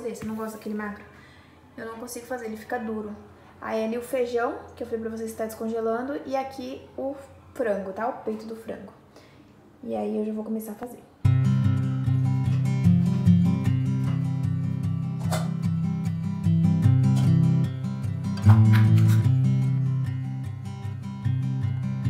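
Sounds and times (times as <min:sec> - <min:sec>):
acoustic guitar strumming chords: 0:11.2 - 0:22.0.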